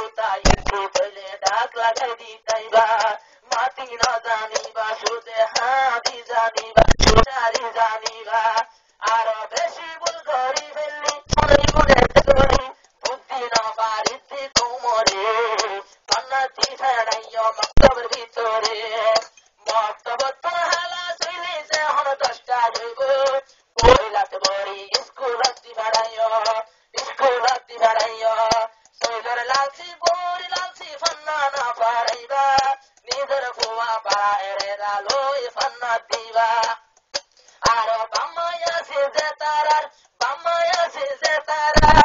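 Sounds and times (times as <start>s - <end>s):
man singing: 0.0s - 36.9s, 37.6s - 42.0s
sharp low thumps: 0.5s - 0.7s.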